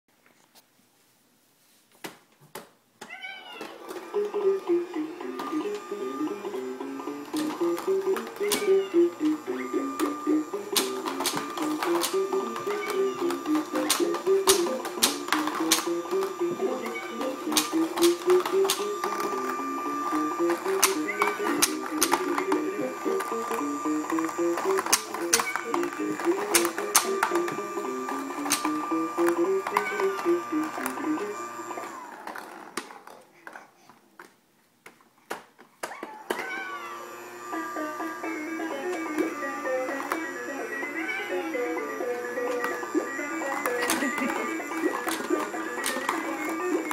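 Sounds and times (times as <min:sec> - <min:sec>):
electronic toy tune: 0:04.1 - 0:32.0, 0:37.0 - 0:46.9
plastic balls clicking and rattling: 0:10.8 - 0:16.3, 0:23.2 - 0:30.9.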